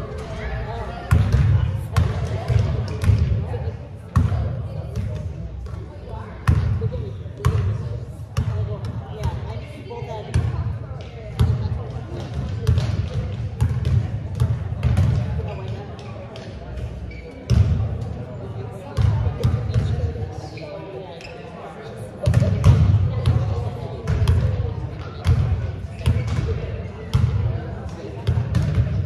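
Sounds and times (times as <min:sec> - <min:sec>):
basketballs dribbled on gym floor: 0:01.1 - 0:03.4, 0:10.3 - 0:16.5, 0:24.1 - 0:27.4, 0:28.2 - 0:29.0.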